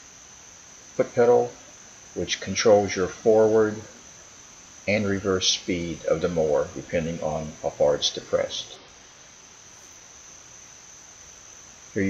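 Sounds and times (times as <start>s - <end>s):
faint background hiss: 0.0s - 12.0s
insects trilling: 0.0s - 12.0s.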